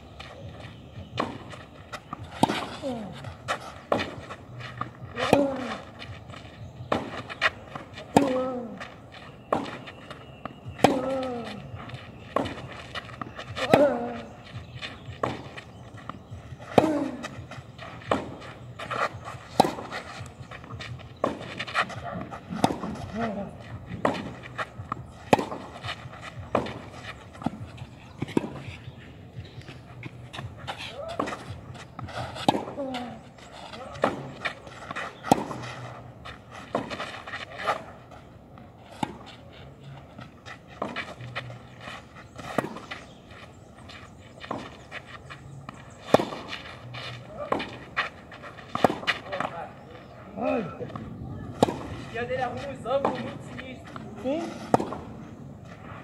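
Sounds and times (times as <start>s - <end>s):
tennis ball bouncing: 1.0s - 8.6s, 9.5s - 38.1s, 38.9s - 39.3s, 40.2s - 43.3s, 44.3s - 49.8s, 50.7s - 55.2s
tennis ball struck by rackets: 1.1s - 4.2s, 6.8s - 8.5s, 9.5s - 11.5s, 12.3s - 28.8s, 30.3s - 38.0s, 38.9s - 39.3s, 40.8s - 41.3s, 42.4s - 43.0s, 44.4s - 48.0s, 48.6s - 49.8s, 50.9s - 55.2s.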